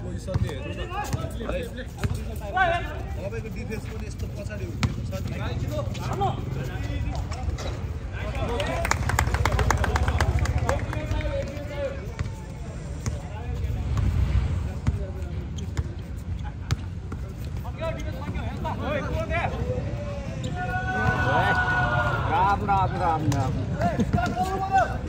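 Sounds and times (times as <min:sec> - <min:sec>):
basketball bouncing on concrete: 0:00.2 - 0:01.3, 0:04.7 - 0:05.4
people shouting: 0:20.4 - 0:22.6.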